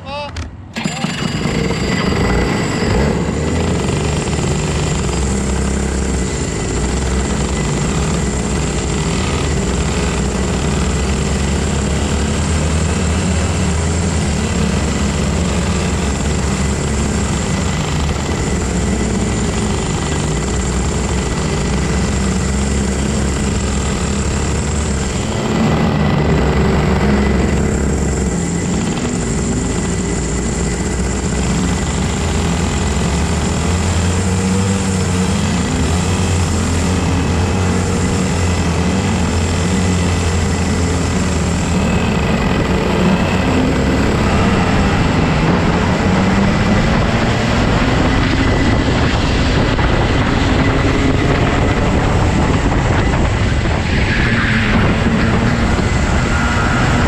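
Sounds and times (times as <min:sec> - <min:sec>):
go-kart engines racing: 0:00.0 - 0:57.0.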